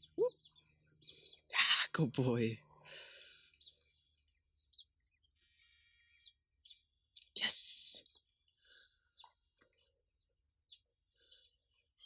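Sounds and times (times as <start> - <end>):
faint bird chirps: 0.0 - 12.0.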